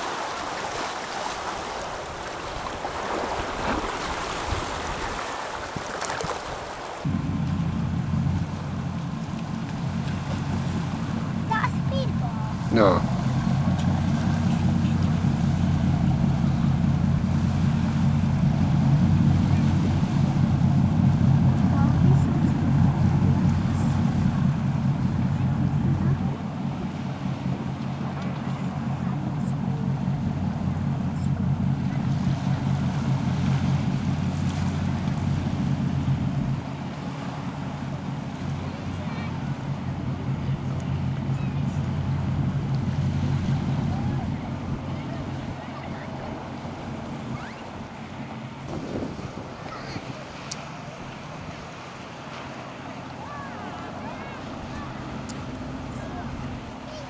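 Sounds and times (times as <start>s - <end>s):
boat engine humming: 0.0s - 57.0s.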